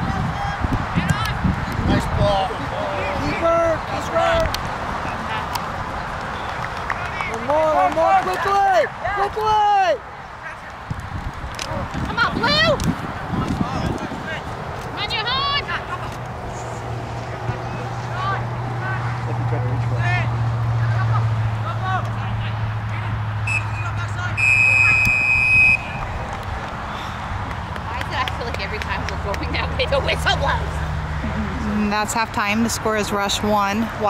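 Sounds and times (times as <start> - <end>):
players shouting: 0.0 - 10.9
referee's whistle blast: 23.5 - 26.1.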